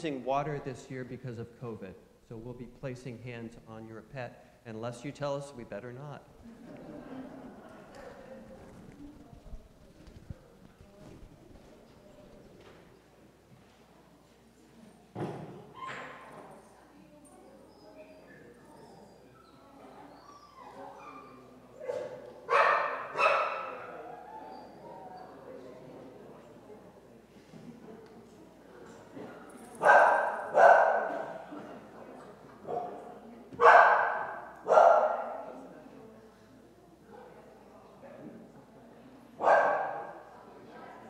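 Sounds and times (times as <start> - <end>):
dog barking: 21.8 - 24.1, 29.8 - 31.3, 33.6 - 35.5, 39.4 - 40.2.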